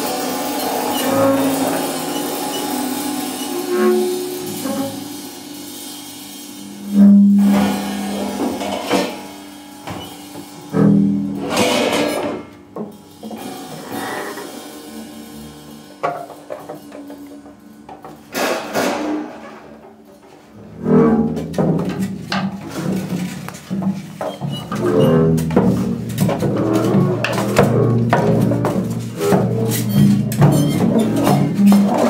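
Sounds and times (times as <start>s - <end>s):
percussion attacks and scrapes: 0.0s - 19.9s, 20.7s - 32.0s.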